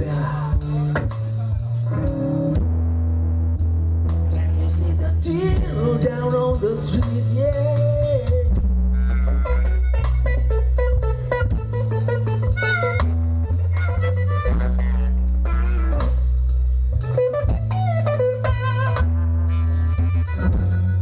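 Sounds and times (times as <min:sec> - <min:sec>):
bass guitar line: 0:00.0 - 0:21.0
drum kit: 0:00.0 - 0:21.0
electric guitar with bending notes: 0:00.0 - 0:21.0.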